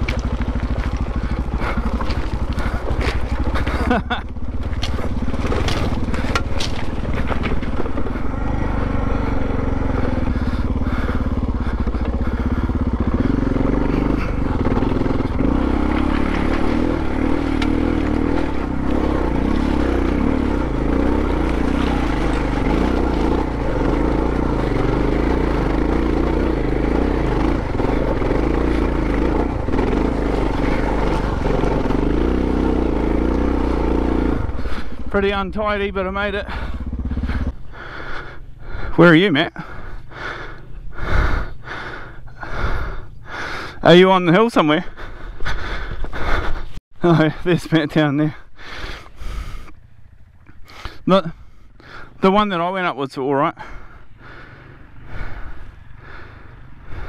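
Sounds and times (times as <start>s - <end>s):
stones knocking under tyres: 0.0s - 8.2s
motorcycle engine under load: 0.0s - 57.0s.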